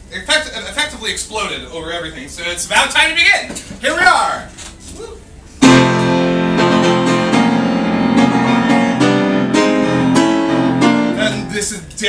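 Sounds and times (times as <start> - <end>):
grand piano chords: 5.6 - 11.7.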